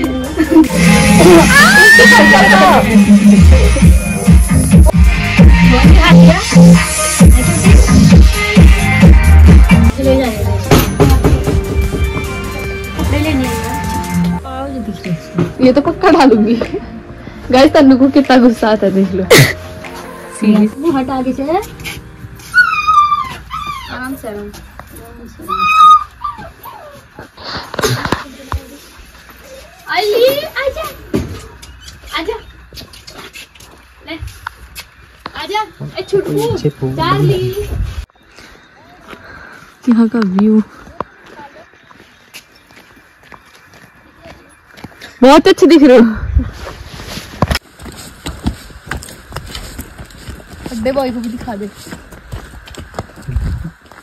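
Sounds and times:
footsteps on dirt path: 14.4 - 54.0
dog whining and whimpering: 22.5 - 24.2, 25.4 - 27.2.

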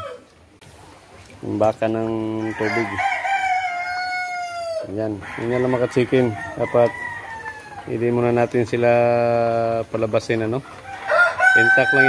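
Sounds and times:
rooster crowing: 0.0 - 0.3, 2.4 - 8.0, 10.8 - 12.0.

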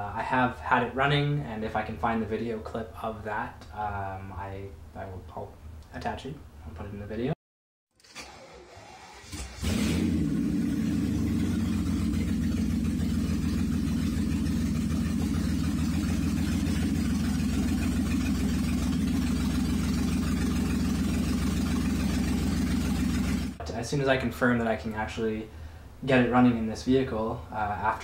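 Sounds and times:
car engine running: 9.0 - 23.6.

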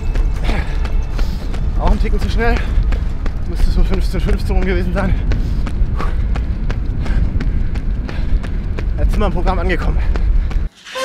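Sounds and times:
low rumble: 0.0 - 10.7
running footsteps on asphalt: 0.0 - 10.8.

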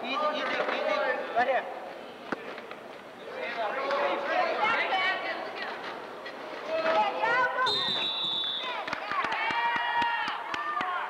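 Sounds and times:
referee's whistle blast: 7.7 - 8.8.

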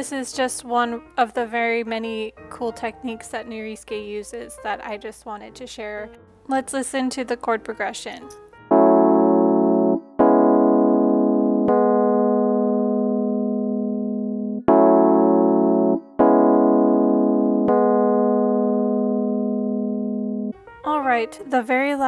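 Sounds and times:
electric piano chords: 8.2 - 21.9.

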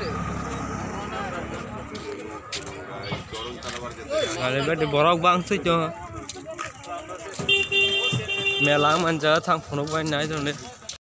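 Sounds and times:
faint voices of people: 0.0 - 11.0
vehicle horn beep: 7.4 - 9.0.

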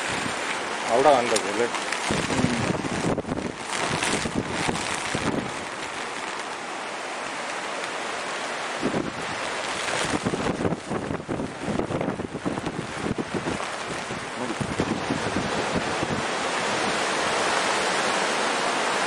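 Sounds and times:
strong wind blowing: 2.0 - 5.8, 8.6 - 19.0
wind buffeting microphone: 2.0 - 5.9, 8.8 - 17.7.

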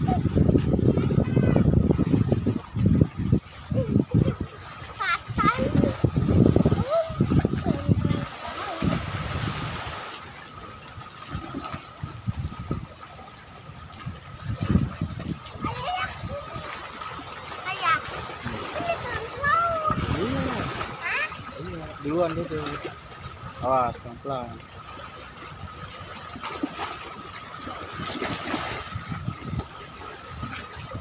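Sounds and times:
seawater splashing on concrete: 0.0 - 31.0
child calling out: 18.7 - 21.4.

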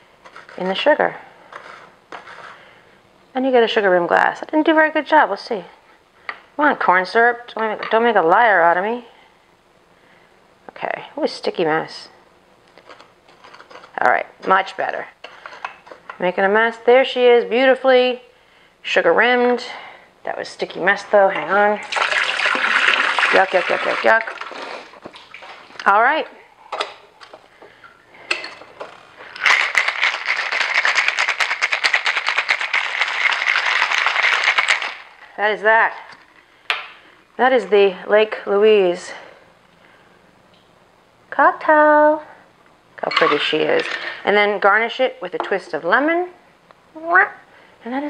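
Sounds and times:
ice rattling in cocktail shaker: 21.8 - 24.6, 28.4 - 35.3.

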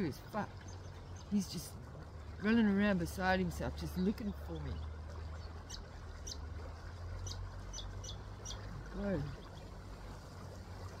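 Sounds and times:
small bird chirping: 4.2 - 6.4, 7.2 - 9.7.

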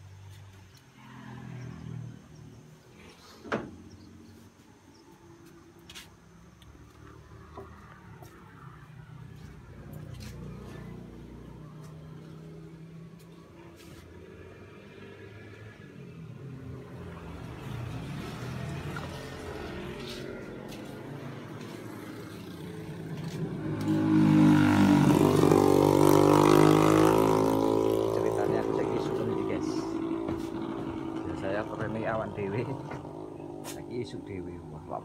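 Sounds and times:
vehicle engine passing by: 0.0 - 5.1, 5.7 - 35.0.

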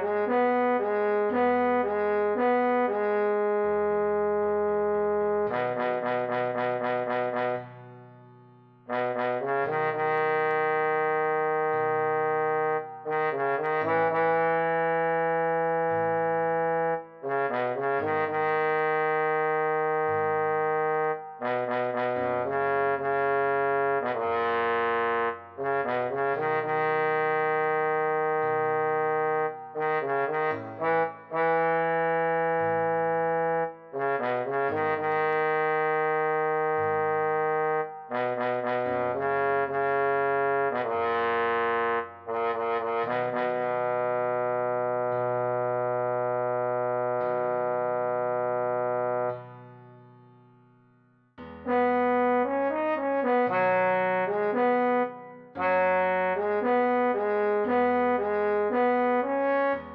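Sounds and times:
trombone melody: 0.0 - 8.0, 8.9 - 49.6, 51.4 - 59.9.

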